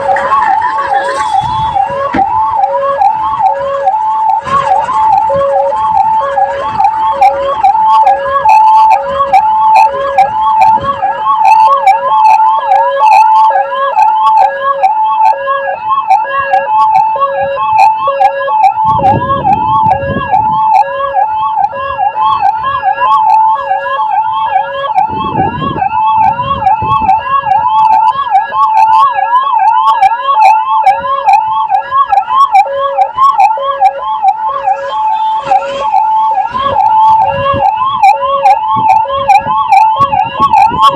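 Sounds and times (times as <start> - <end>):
ambulance siren: 0.0 - 40.9.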